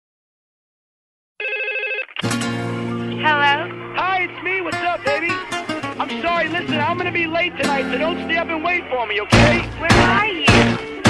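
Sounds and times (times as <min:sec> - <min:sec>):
telephone ringing: 0:01.4 - 0:02.2.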